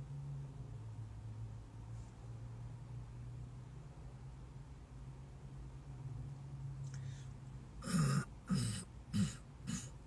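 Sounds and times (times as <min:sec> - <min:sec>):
man coughing: 0:07.8 - 0:10.0.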